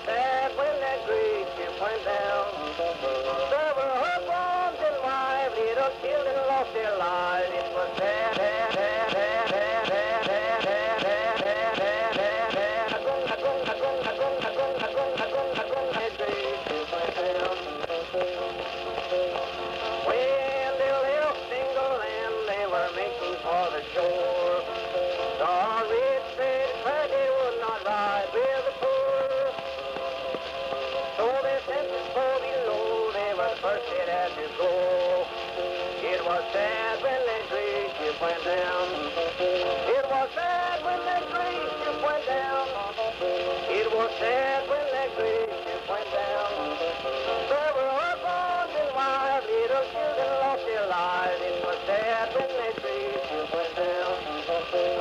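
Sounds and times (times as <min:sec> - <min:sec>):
old-time country music on phonograph: 0:00.0 - 0:55.0.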